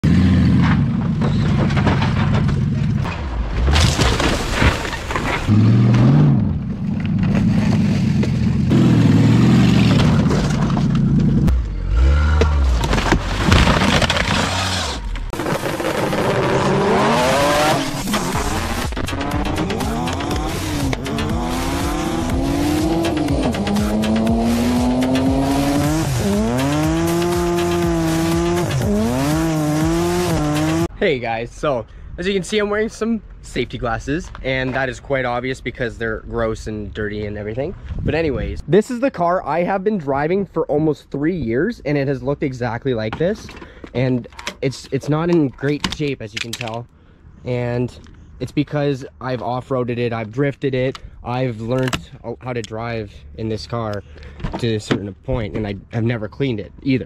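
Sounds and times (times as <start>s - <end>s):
tires squealing: 4.8s - 30.9s
car engine revving high: 11.5s - 12.8s, 14.2s - 30.9s.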